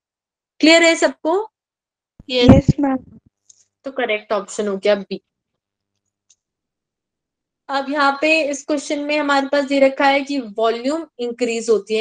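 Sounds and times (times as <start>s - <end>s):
woman's voice: 2.3s - 3.2s.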